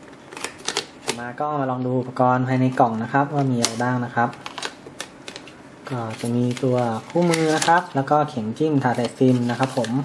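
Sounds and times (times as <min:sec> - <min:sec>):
paper and cardboard rustling: 0:04.4 - 0:08.0, 0:08.8 - 0:10.0.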